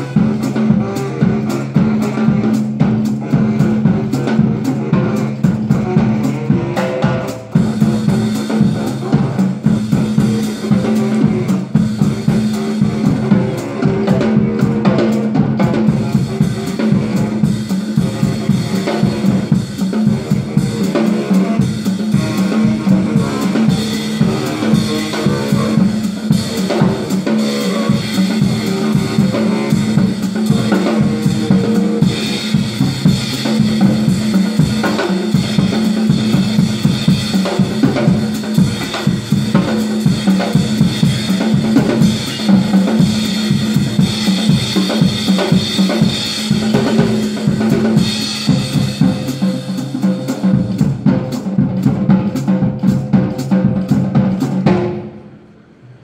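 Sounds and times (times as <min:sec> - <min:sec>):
drum kit groove: 0:00.0 - 0:55.3.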